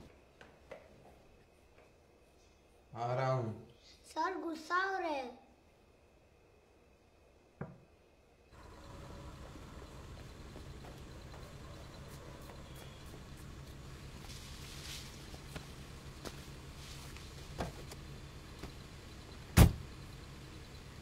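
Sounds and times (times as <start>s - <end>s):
car door shutting thump: 19.6s - 19.8s.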